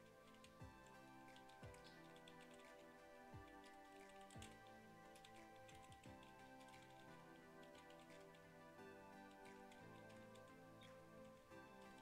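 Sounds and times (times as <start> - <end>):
computer keyboard typing: 0.0 - 12.0
faint steady tones: 0.0 - 12.0.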